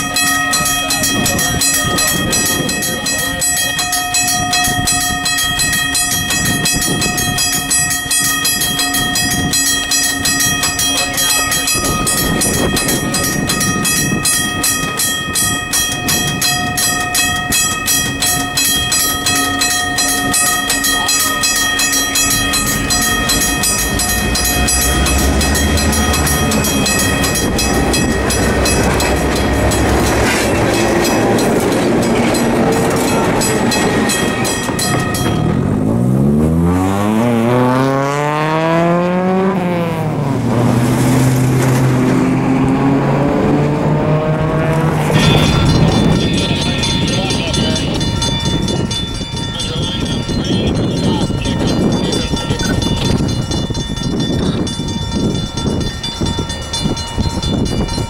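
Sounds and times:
crossing warning bell ringing: 0.0 - 58.0
diesel locomotive engine rumble: 0.0 - 58.0.

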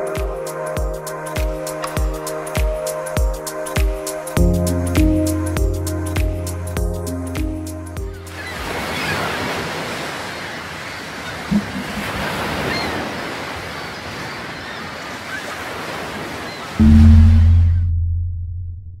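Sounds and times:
ocean surf noise: 8.2 - 17.8
deep low tone: 16.8 - 19.0.

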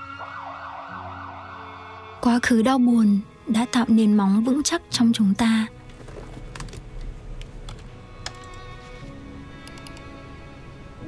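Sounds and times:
ambulance siren wailing: 0.0 - 2.2.

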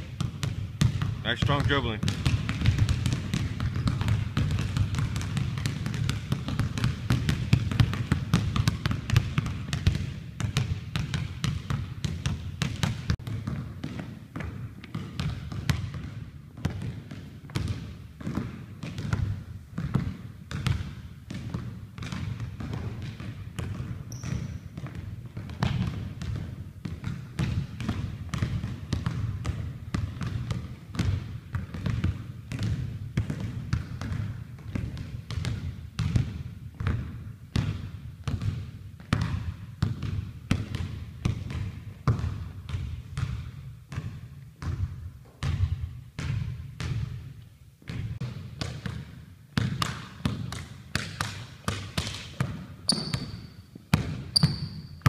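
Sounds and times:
basketball bouncing on wooden floor: 0.0 - 55.0.

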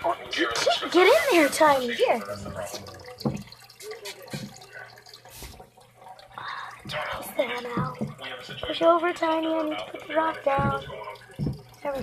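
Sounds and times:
water splashing and dripping: 0.0 - 12.0
rock knocking in tank: 7.7 - 8.2, 10.5 - 11.7.

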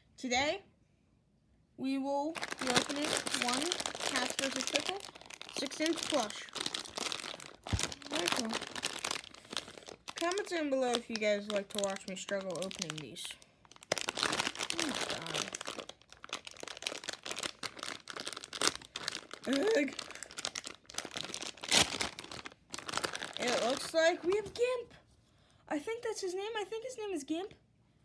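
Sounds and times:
plastic packaging crinkling: 2.3 - 24.8.

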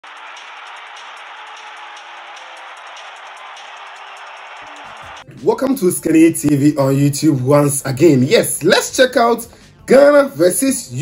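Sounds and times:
rushing crowd-like noise: 0.0 - 5.3.

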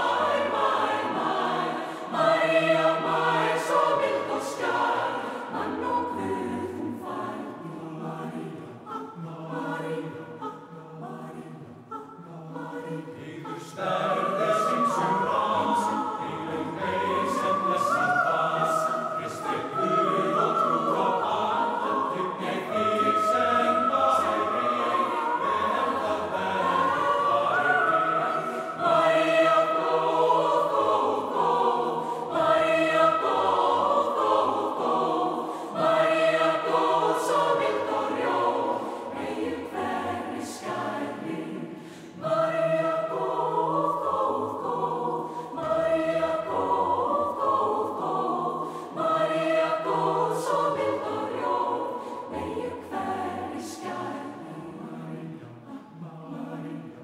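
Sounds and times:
mixed choir singing unaccompanied: 0.0 - 57.0.

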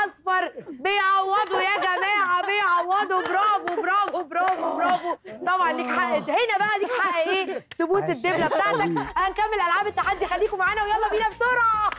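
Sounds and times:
hand claps: 1.4 - 5.0, 9.7 - 10.0.

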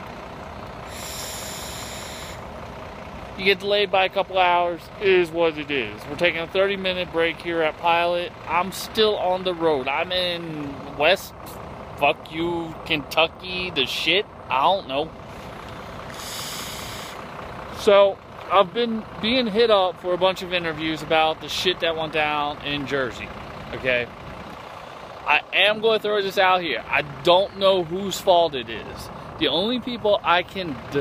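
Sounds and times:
bus and truck engines idling: 0.0 - 31.0
vape hiss: 0.9 - 2.4, 16.2 - 17.2.

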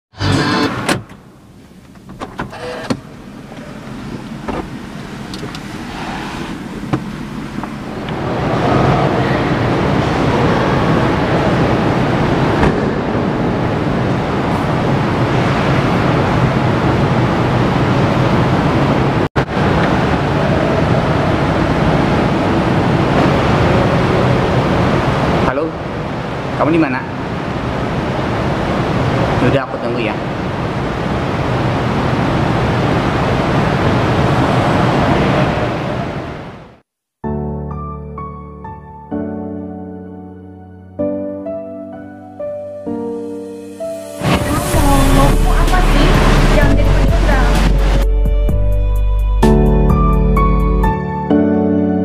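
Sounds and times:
car engine starting: 0.1 - 17.4, 44.2 - 50.9
car engine running: 1.7 - 8.2, 44.7 - 49.1.

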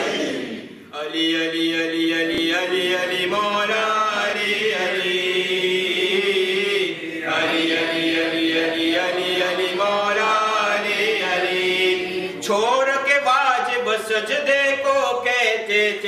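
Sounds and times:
man chanting: 12.4 - 16.0.

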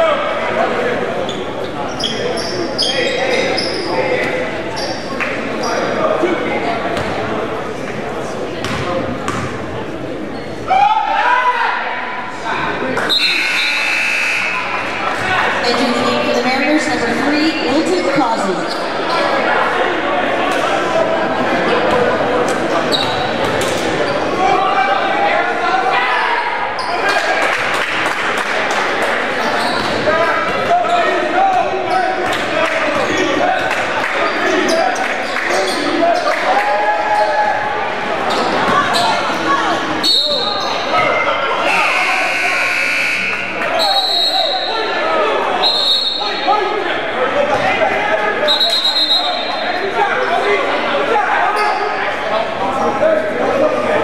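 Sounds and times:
voices of players and spectators: 0.0 - 54.0
basketball bouncing on court: 8.6 - 9.6.

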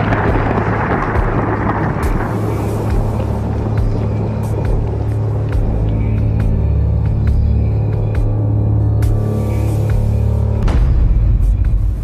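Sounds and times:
explosion rumble: 0.0 - 6.7, 10.6 - 12.0
low droning music: 0.0 - 12.0.

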